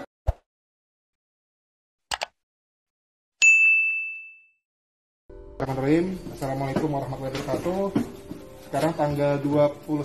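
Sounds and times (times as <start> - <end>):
notification bell ding: 3.4 - 4.6.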